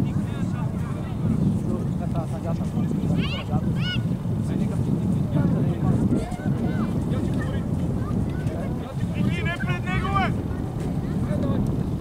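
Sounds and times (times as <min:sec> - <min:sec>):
wind rumbling on microphone: 0:00.0 - 0:12.0
distant shouts of young players: 0:03.2 - 0:04.2.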